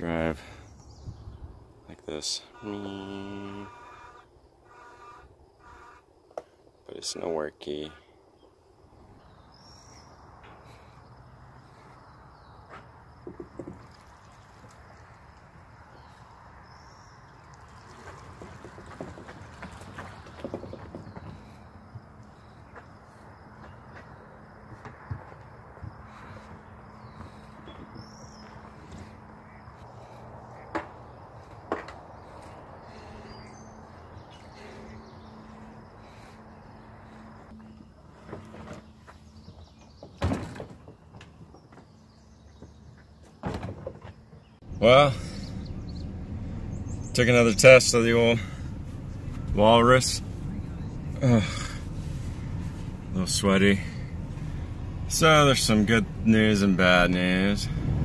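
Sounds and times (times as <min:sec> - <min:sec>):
bird chirps: 0:08.3 - 0:24.6, 0:25.9 - 0:38.1, 0:44.4 - 0:53.2
low steady hum: 0:44.7 - 0:58.0.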